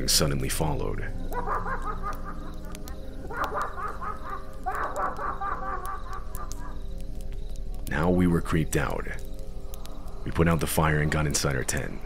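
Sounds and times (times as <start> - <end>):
low background tone: 0.0 - 12.0
maniacal laughter: 1.3 - 6.8.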